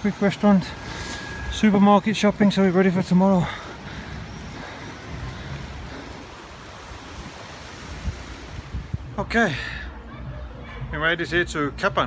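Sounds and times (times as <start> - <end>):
wind on microphone: 3.8 - 9.2.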